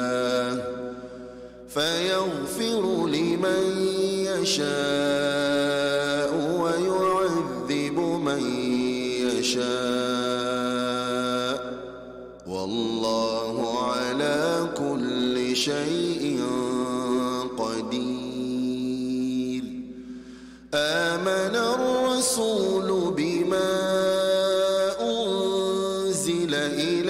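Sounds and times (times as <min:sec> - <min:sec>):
man chanting melodically: 0:00.0 - 0:01.0, 0:01.6 - 0:19.8, 0:20.8 - 0:27.0.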